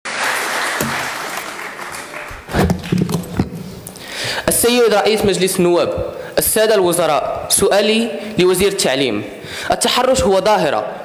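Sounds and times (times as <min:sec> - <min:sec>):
audience applause: 0:00.0 - 0:03.2.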